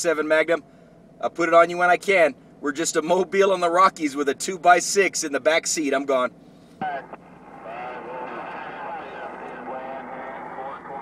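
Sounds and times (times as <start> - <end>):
distant voice on radio: 6.8 - 11.0
radio static hiss: 6.8 - 11.0.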